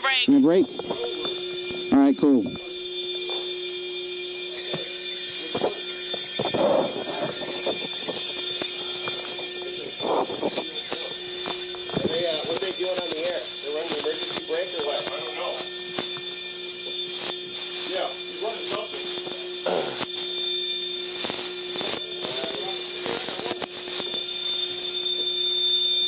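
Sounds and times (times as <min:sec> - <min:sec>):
fire alarm tone: 0:00.0 - 0:26.0.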